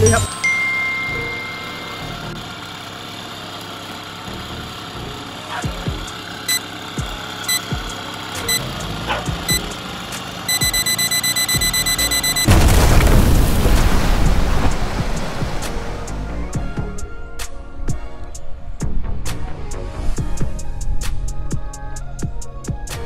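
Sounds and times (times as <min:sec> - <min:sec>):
background music with beats: 0:05.6 - 0:12.5, 0:14.3 - 0:23.0
fast even beeps: 0:07.5 - 0:07.7, 0:08.4 - 0:08.8, 0:09.4 - 0:09.8, 0:10.5 - 0:12.6
splash of water: 0:12.5 - 0:16.1.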